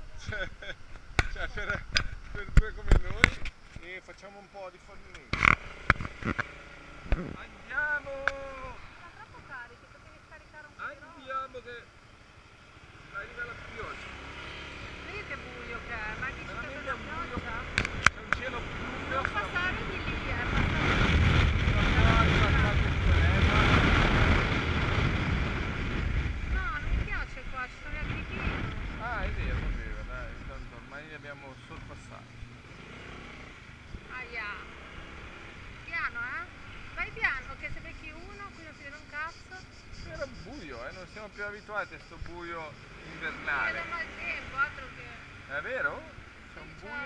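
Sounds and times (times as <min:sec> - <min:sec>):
wind on microphone: 0:17.4 - 0:30.7
sharp clicks: 0:17.7 - 0:18.4.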